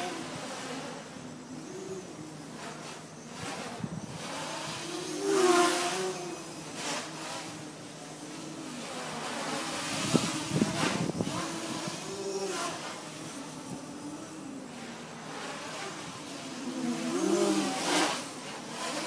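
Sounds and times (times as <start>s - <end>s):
drone motors whining: 0.0s - 19.0s.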